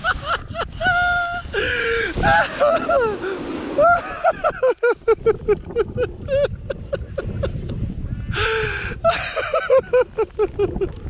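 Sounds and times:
person laughing breathlessly: 0:00.0 - 0:11.0
wind on microphone: 0:00.0 - 0:11.0
person gasping in-breaths: 0:01.5 - 0:02.2, 0:08.3 - 0:09.0.

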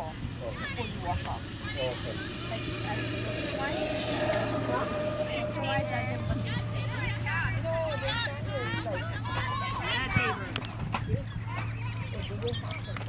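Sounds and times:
vehicle engine humming: 0:00.0 - 0:11.1
faint voices: 0:00.0 - 0:13.0.

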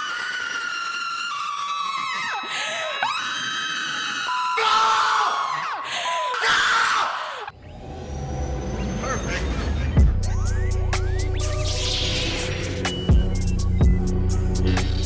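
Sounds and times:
women screaming: 0:00.0 - 0:07.5
low music intro: 0:07.6 - 0:15.0.

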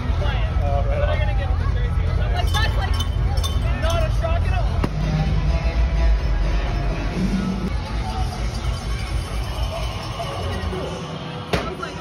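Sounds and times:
voices in arena: 0:00.0 - 0:12.0.

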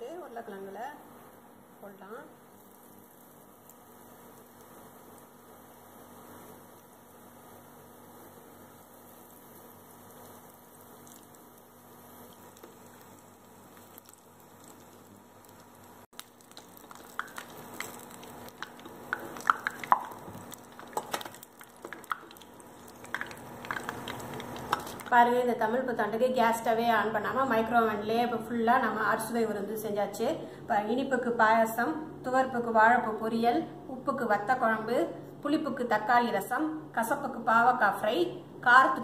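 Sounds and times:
potato slices deep-frying in oil: 0:01.8 - 0:30.1
oil crackling and popping: 0:02.4 - 0:25.3.

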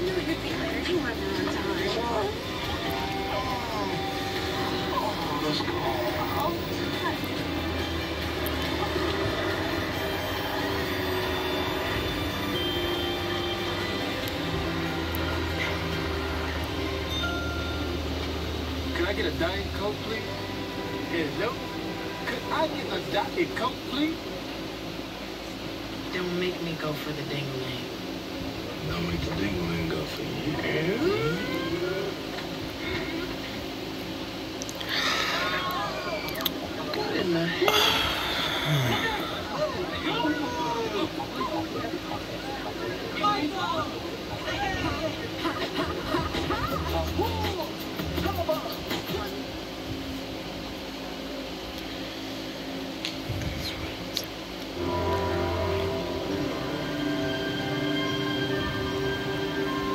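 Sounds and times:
film soundtrack from television: 0:00.0 - 0:59.9
low steady hum: 0:00.0 - 0:59.9.

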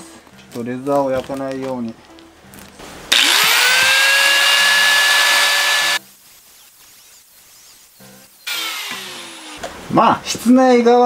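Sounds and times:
angle grinder cutting steel: 0:03.1 - 0:06.0, 0:08.4 - 0:09.6.

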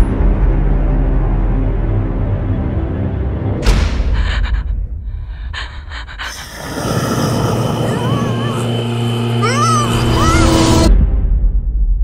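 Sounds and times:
high wavering whining cries: 0:06.1 - 0:10.9
vacuum cleaner humming: 0:06.3 - 0:10.9.

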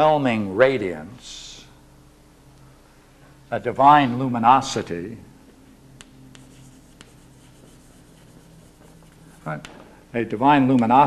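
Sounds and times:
chalk ticks on board: 0:06.0 - 0:09.8
chalk scratching on chalkboard: 0:06.3 - 0:09.6.

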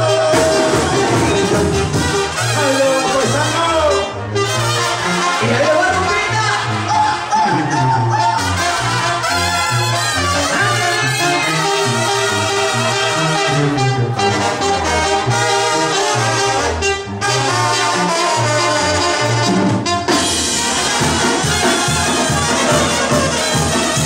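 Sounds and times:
brass band music: 0:00.0 - 0:24.0
tuba bass line: 0:00.0 - 0:24.0.

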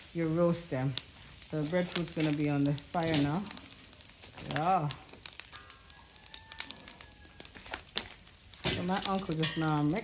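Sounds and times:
charcoal fire crackling: 0:00.0 - 0:10.0.

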